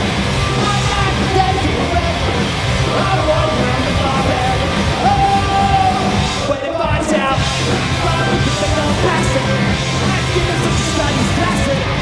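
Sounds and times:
rock band playing live: 0.0 - 12.0
person singing shouted vocals: 0.4 - 12.0.

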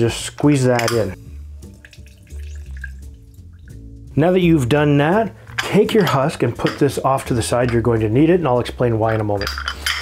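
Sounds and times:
soft background music: 0.0 - 10.0
juice trickling into a glass: 1.7 - 3.8.

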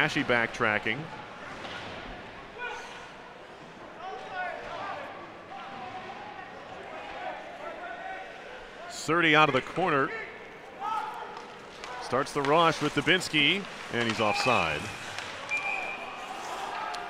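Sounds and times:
crowd voices and shouts: 0.0 - 17.0
sticks and puck knocking on ice: 11.4 - 15.6.

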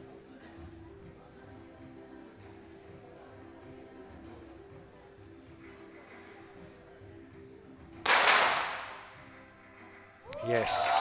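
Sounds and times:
pistol shot with reverberation: 8.0 - 9.2.

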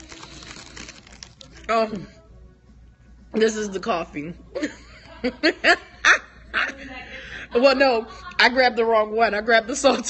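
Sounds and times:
woman laughing: 4.5 - 8.6.

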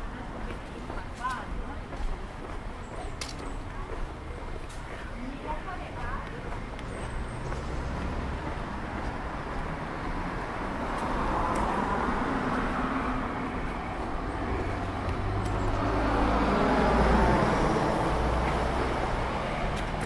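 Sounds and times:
road traffic passing: 0.0 - 20.0.

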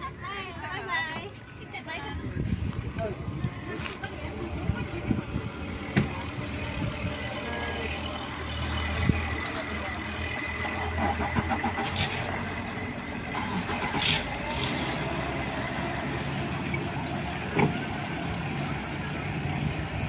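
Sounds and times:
outboard motor humming: 3.1 - 20.0.

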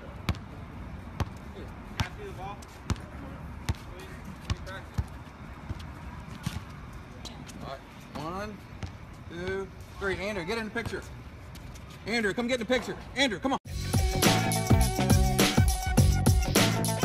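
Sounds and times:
basketball bouncing on hard court: 0.2 - 0.5, 2.0 - 2.3, 2.9 - 6.7, 8.8 - 11.1.

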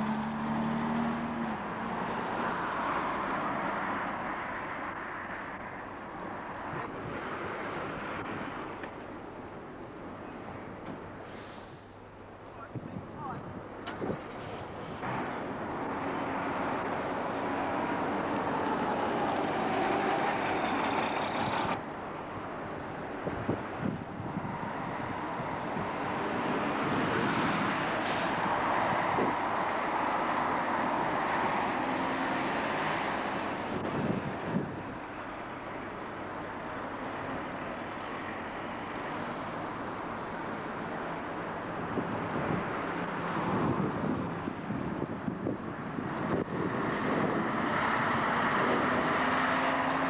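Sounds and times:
diesel bus engines running: 0.0 - 3.4, 13.4 - 50.0.

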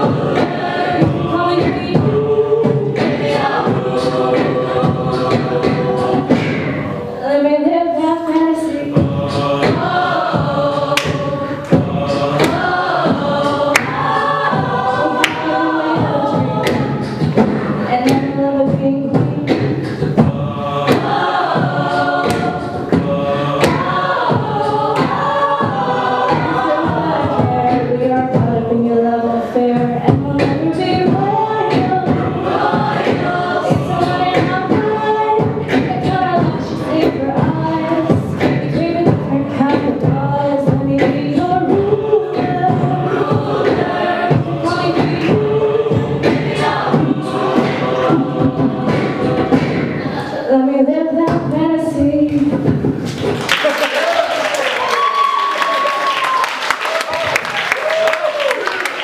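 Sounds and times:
woman singing lead: 0.0 - 3.7, 7.1 - 11.7, 12.4 - 19.8, 23.6 - 44.0, 50.0 - 52.7
steady beat: 0.0 - 7.2, 8.8 - 50.5
a cappella choir singing: 0.0 - 54.0.

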